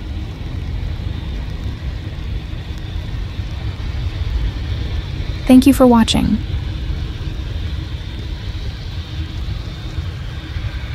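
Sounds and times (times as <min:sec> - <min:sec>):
hiss of wet runway: 0:00.0 - 0:05.4, 0:06.5 - 0:10.9.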